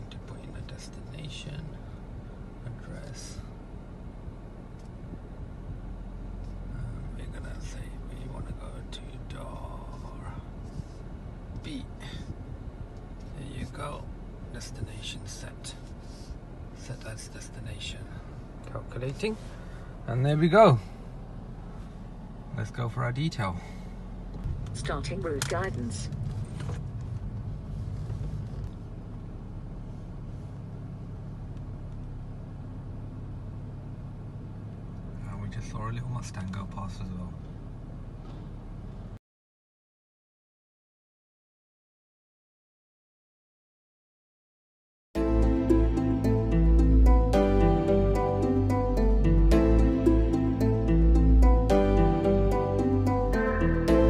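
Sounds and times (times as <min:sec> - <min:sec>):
car cabin hum: 0:00.0 - 0:39.1.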